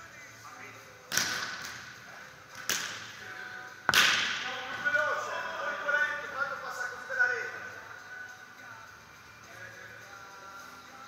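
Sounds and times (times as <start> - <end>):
volleyball hits echoing: 3.8 - 4.8.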